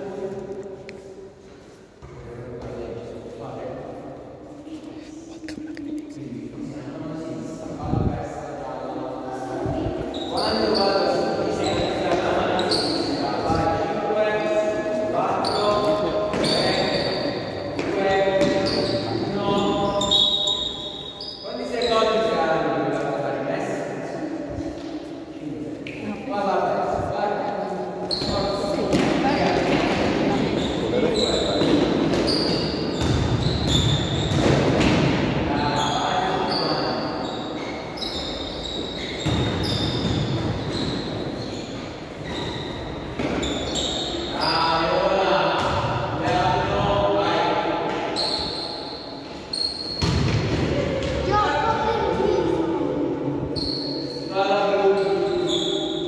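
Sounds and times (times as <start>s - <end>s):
players' voices: 0.0s - 48.7s, 50.1s - 56.0s
sneakers squeaking: 9.7s - 22.3s, 27.7s - 47.0s, 47.8s - 52.6s, 53.3s - 56.0s
basketball bouncing on gym floor: 17.8s - 18.8s, 31.4s - 35.2s, 39.2s - 41.0s, 45.6s - 46.4s, 49.8s - 51.3s
echoing shouting and chatter: 35.2s - 56.0s.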